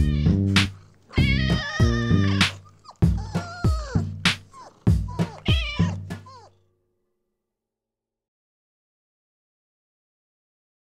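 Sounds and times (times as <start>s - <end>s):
music with plucked bass: 0.0s - 6.2s
cat meowing: 0.0s - 6.6s.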